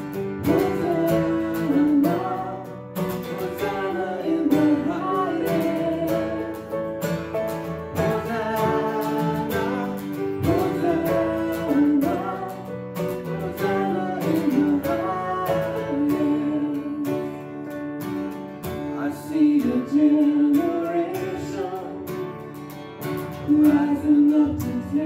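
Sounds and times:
grand piano chords: 0.0s - 25.0s
strummed acoustic guitar: 0.0s - 25.0s
woman singing: 0.4s - 6.6s, 7.9s - 12.7s, 13.4s - 17.3s, 19.0s - 22.1s, 23.4s - 25.0s.

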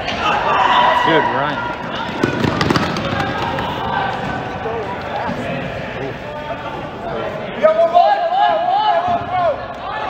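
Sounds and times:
loud shout: 0.0s - 2.1s.

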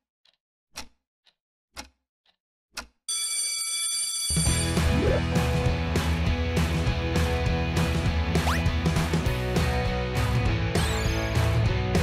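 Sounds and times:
clock ticking: 0.2s - 3.0s
alarm clock ringing: 3.1s - 4.8s
background music with steady beat: 4.5s - 12.0s.

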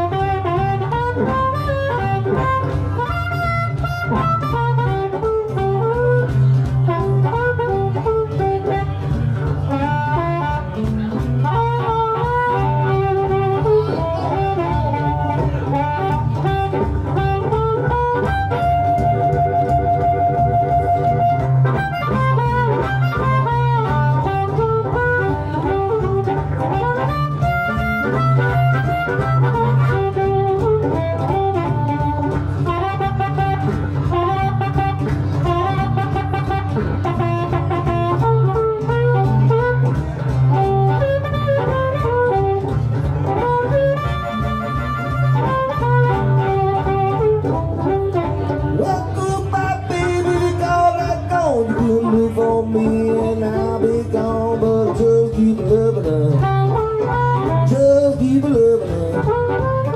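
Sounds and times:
guitar rhythm: 0.0s - 59.9s
harmonica playing blues: 0.0s - 59.9s.

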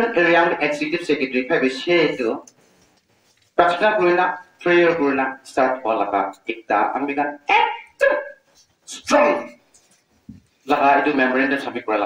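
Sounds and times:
man shouting into microphone: 8.9s - 9.6s.

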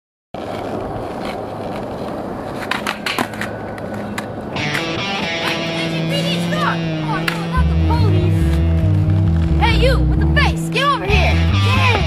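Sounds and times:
skateboard clacks: 0.4s - 6.1s
skateboard wheels rolling on pavement: 0.4s - 12.0s
music with held notes: 4.6s - 12.0s.

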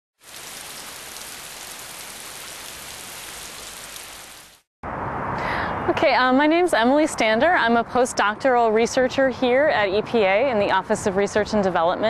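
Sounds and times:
rain falling: 0.2s - 4.7s.

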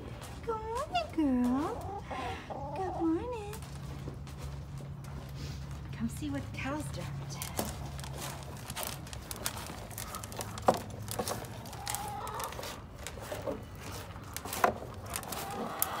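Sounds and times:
cattle crunching grain: 0.0s - 6.1s, 6.8s - 16.0s.

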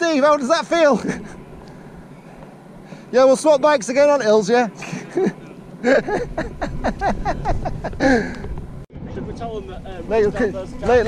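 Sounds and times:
man laughing: 0.7s - 1.4s, 4.7s - 8.5s
wind rumble on microphone: 5.1s - 11.0s.

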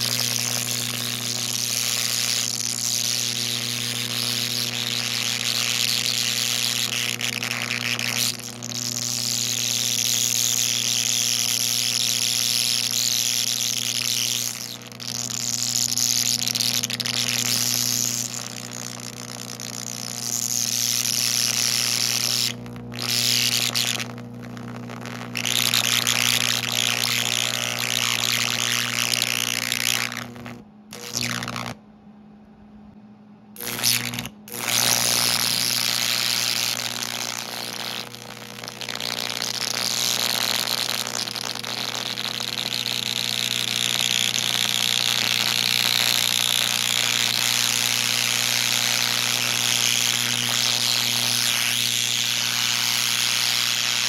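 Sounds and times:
carbon arc torch hissing: 0.0s - 31.8s, 33.6s - 54.0s.

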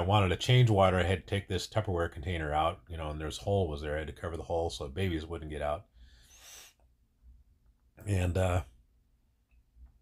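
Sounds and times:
short breath: 5.9s - 6.9s.

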